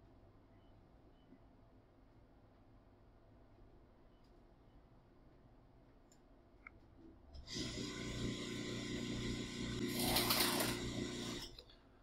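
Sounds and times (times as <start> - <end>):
small electric motor running: 7.5 - 11.5.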